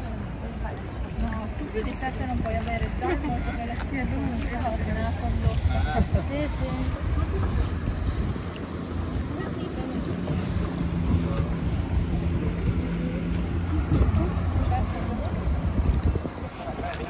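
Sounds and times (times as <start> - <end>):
motorboat engine hum: 0.0 - 17.0
water washing around boat: 0.0 - 17.0
wind buffeting microphone: 0.0 - 17.0.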